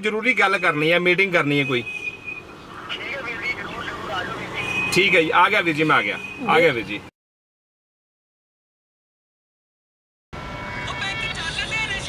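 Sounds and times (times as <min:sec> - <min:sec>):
people talking: 0:00.0 - 0:01.9, 0:02.8 - 0:07.1, 0:10.9 - 0:12.0
steady high-pitched tone: 0:10.4 - 0:12.0.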